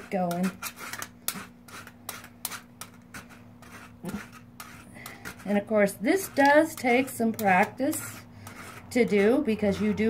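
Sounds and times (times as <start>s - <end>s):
rasp scraping hoof: 0.0s - 10.0s.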